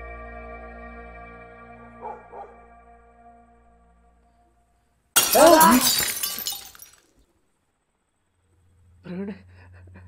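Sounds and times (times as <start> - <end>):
glass window shattering: 5.2 - 7.0.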